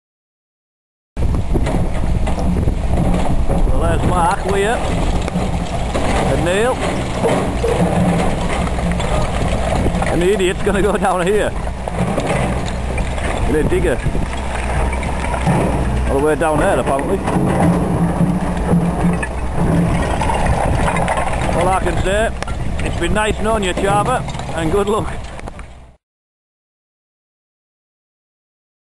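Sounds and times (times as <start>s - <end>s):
wind on microphone: 1.2s - 25.9s
diesel excavator engine rumbling: 1.2s - 26.0s
man speaking: 3.7s - 4.8s, 6.2s - 6.9s, 10.1s - 11.6s, 13.5s - 14.0s, 16.1s - 17.4s, 21.5s - 25.2s.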